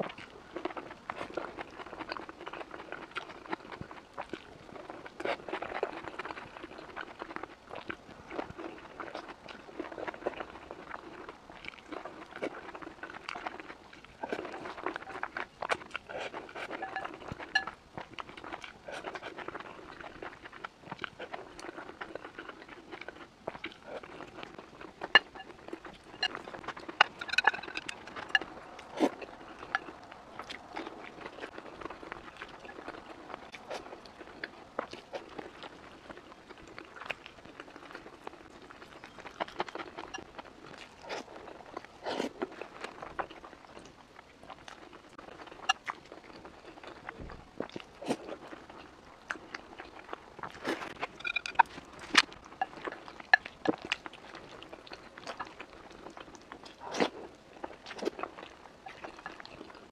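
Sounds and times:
chewing food: 0.0 - 59.9
utensils clicking on glass bowl: 27.0 - 28.0.

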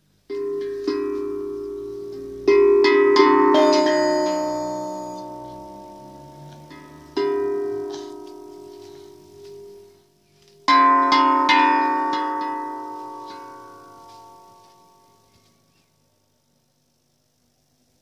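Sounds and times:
handpan ringing notes: 0.3 - 10.0, 10.6 - 15.3.

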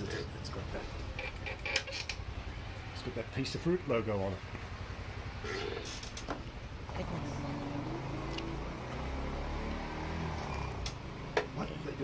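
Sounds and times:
vehicle engine droning: 2.1 - 12.0.

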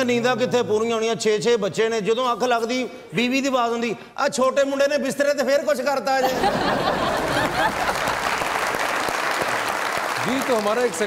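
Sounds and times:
people laughing: 6.2 - 8.4
audience applauding and laughing: 6.2 - 11.0.

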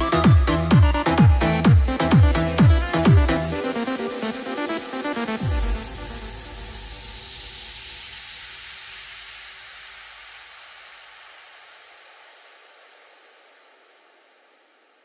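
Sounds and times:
bass: 0.0 - 11.4
downward sliding noise sweep: 3.4 - 11.1.

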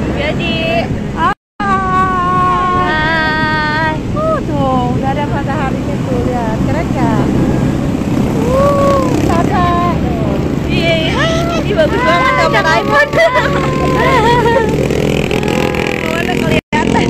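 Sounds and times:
jeep engine rumbling: 0.0 - 17.0
voices: 0.0 - 17.0.

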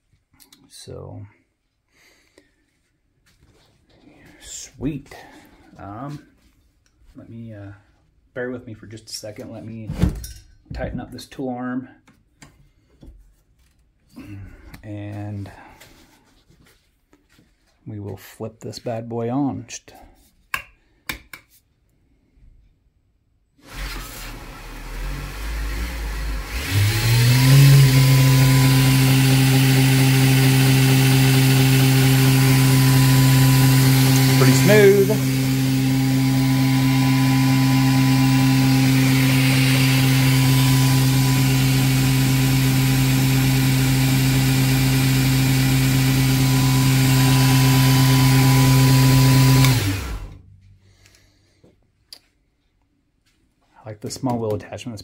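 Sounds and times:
belt grinder motor humming: 23.7 - 50.4
abrasive belt running: 25.0 - 44.5, 46.4 - 50.4.

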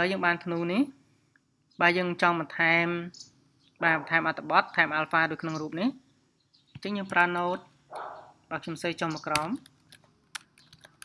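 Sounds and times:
person speaking: 3.8 - 6.0, 6.8 - 9.7.

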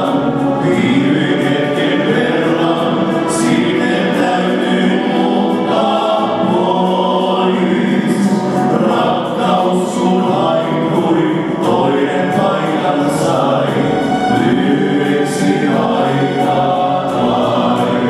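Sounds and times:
male vocal group singing harmony: 0.0 - 18.0.

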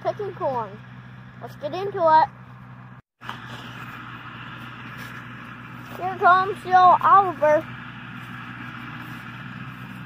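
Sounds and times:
tractor engine droning: 0.0 - 10.0.

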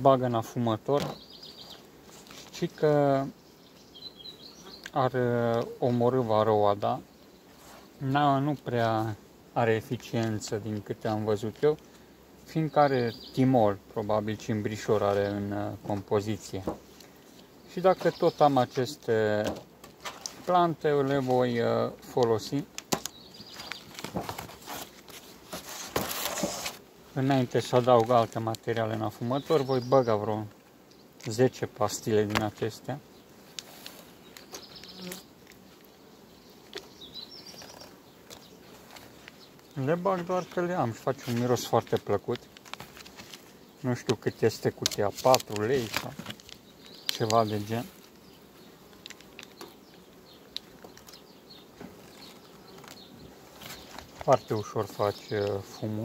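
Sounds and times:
faint buzzing of bees: 0.0 - 56.0
cardboard rustles and taps: 22.2 - 26.8, 41.2 - 47.4.

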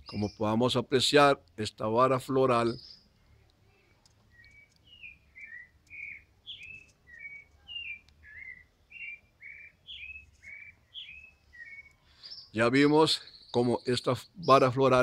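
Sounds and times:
bird chirping: 0.0 - 15.0.

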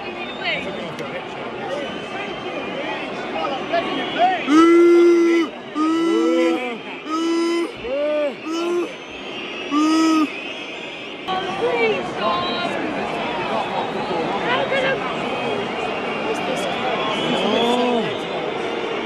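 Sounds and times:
fan singing loudly nearby: 4.4 - 10.5.

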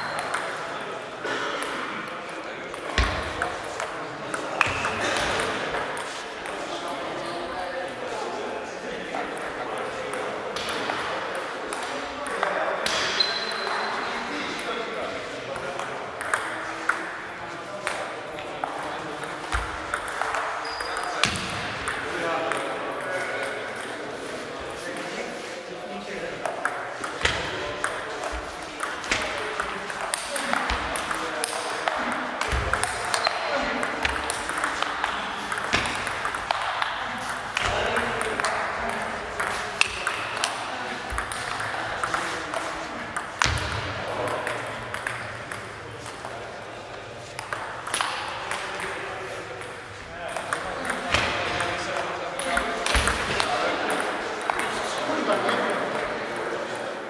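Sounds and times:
voices murmuring in a hall: 0.0 - 57.0.

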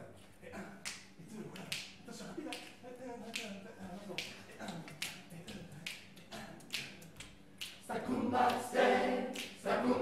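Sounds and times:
fingers snapping on a beat: 0.8 - 8.6, 9.3 - 9.6.

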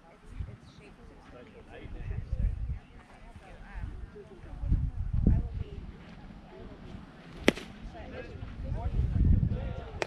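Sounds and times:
baseball sharp crack: 7.3 - 7.8.

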